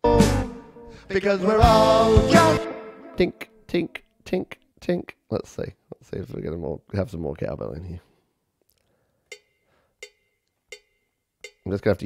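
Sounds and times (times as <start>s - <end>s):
cowbell strike: 9.3s - 11.8s.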